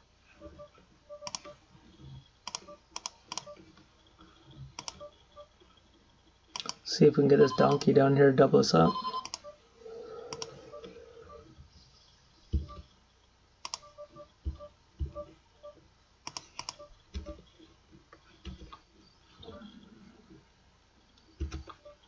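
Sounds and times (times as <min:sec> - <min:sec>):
mouse and keyboard clicks: 0:01.2 - 0:01.5, 0:04.8 - 0:05.1, 0:10.3 - 0:10.9, 0:13.6 - 0:13.9, 0:16.2 - 0:17.4.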